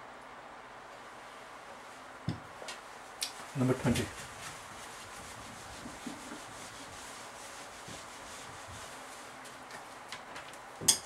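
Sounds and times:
eraser rubbing whiteboard: 0:03.9 - 0:09.6.

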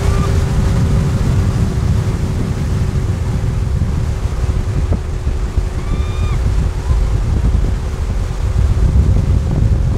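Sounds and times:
boat engine hum: 0:00.0 - 0:09.9
rushing water: 0:00.0 - 0:09.9
wind buffeting microphone: 0:00.0 - 0:09.9.

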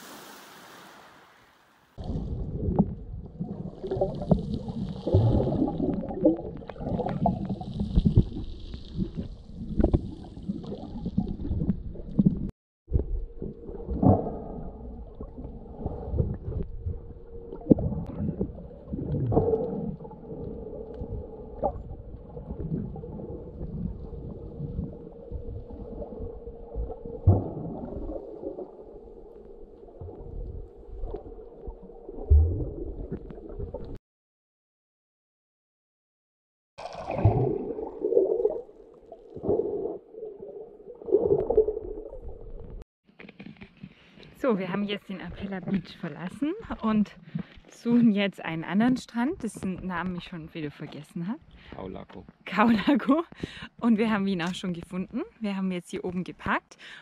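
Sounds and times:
underwater churning rumble: 0:02.0 - 0:34.0.

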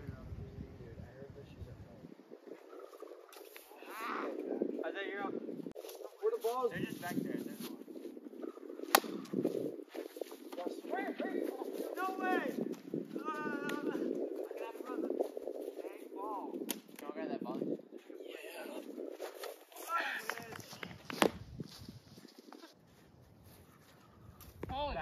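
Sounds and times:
plastic bat hitting ball: 0:08.8 - 0:09.4.

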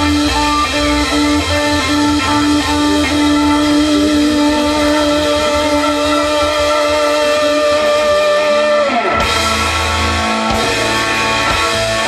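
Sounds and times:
rock band sustained ringing note: 0:00.0 - 0:12.0.

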